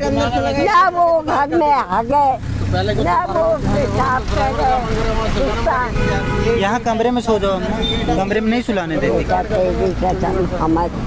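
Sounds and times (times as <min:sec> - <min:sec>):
low rumble of road traffic: 0:00.0 - 0:11.0
people talking: 0:00.0 - 0:11.0.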